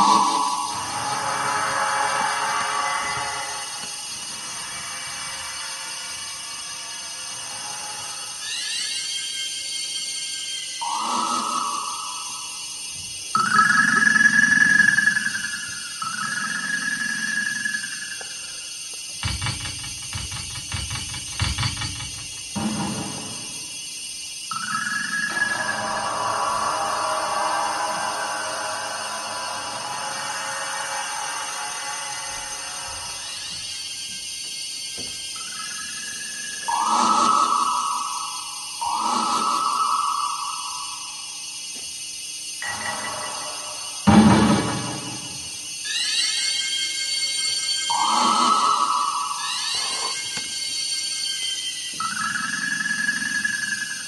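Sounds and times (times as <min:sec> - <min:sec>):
ringing high tone: 0:00.0 - 0:01.8, 0:09.6 - 0:12.8, 0:45.9 - 0:54.0
sliding high electronic tones: 0:00.0 - 0:03.7, 0:08.4 - 0:12.8, 0:35.4 - 0:41.2, 0:45.9 - 0:54.0
low held electronic tone: 0:00.0 - 0:03.9, 0:10.8 - 0:12.8, 0:13.4 - 0:18.5, 0:47.9 - 0:54.0.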